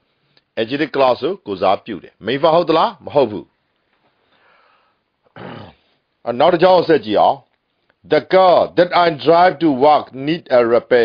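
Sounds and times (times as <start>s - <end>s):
faint breath: 4.2s - 5.1s.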